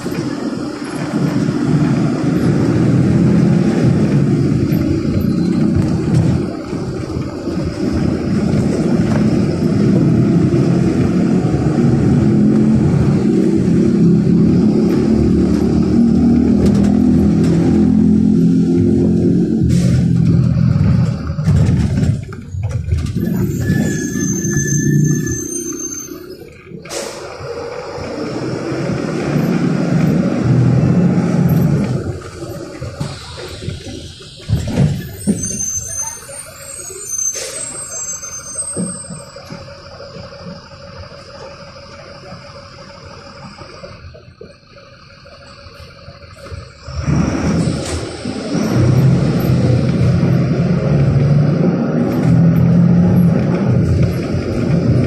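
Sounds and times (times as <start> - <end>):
bus engine driving: 0.0 - 55.0
brief high squeal: 23.2 - 27.2, 33.1 - 39.4.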